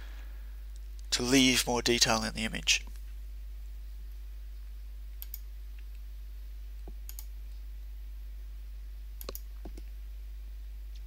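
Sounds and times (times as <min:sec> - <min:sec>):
low electrical hum: 0:00.0 - 0:11.0
computer mouse clicking: 0:05.2 - 0:05.9, 0:06.8 - 0:07.3, 0:09.2 - 0:09.9.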